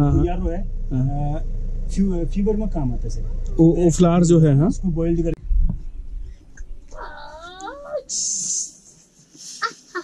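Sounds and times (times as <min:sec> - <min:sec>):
high-pitched wavering cry: 0:06.9 - 0:08.1.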